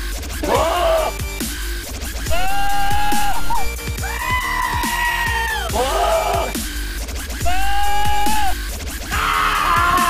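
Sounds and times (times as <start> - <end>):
goat screaming: 0.4 - 1.2, 2.3 - 6.6
electronic dance music: 2.2 - 10.0.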